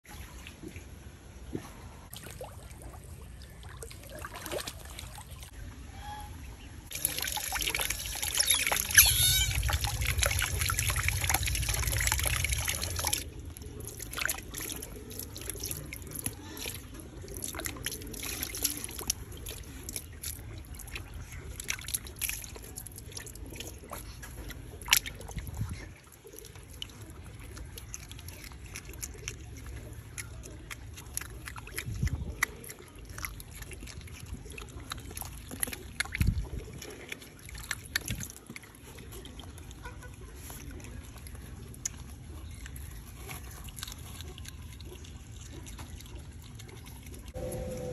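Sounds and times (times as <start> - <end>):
small water splashes: 0.1 - 5.8, 6.9 - 47.4
water dripping and trickling: 6.9 - 47.4
low rumble: 8.9 - 13.6, 47.4 - 47.9.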